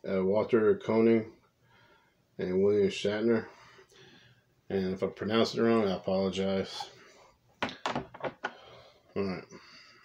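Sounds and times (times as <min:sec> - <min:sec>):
plastic comic cases knocking: 0:07.6 - 0:08.5.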